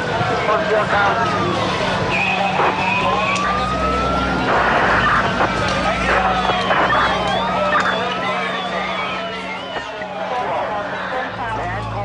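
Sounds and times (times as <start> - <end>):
fire engine siren wailing: 0.0 - 12.0
higher steady siren tone: 0.5 - 12.0.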